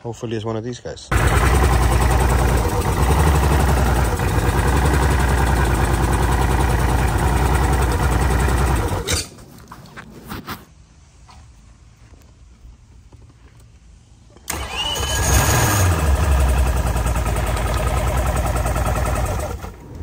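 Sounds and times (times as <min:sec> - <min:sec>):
outboard engine misfiring at idle: 0:01.1 - 0:09.1, 0:14.5 - 0:19.8.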